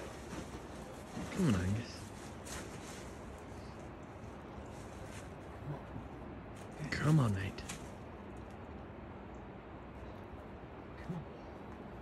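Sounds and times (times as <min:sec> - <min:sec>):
steady low background noise: 0:00.0 - 0:12.0.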